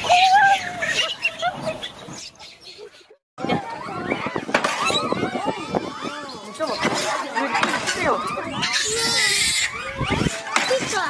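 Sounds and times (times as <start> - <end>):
monkeys calling: 0.0 - 11.0.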